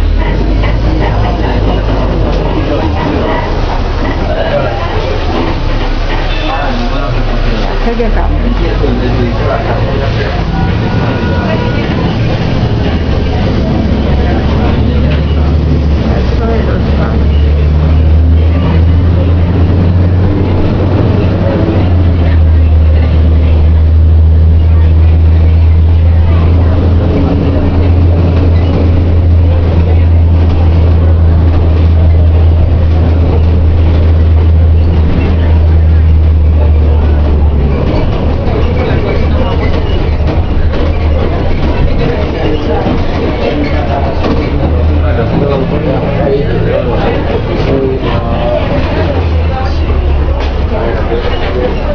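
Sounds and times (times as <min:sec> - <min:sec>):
bus engine droning: 0:00.0 - 0:51.9
faint passenger voices: 0:00.0 - 0:51.9.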